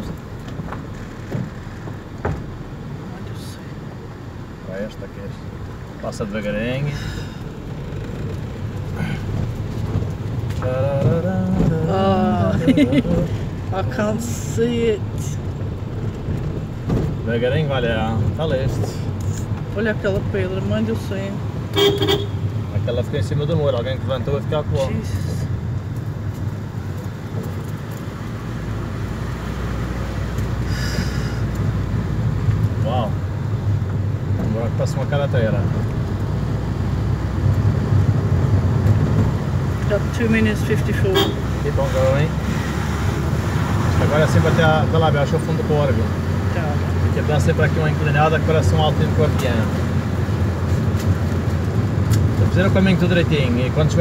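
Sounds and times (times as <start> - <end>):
vehicle engine and tyre rumble: 0.0 - 54.0.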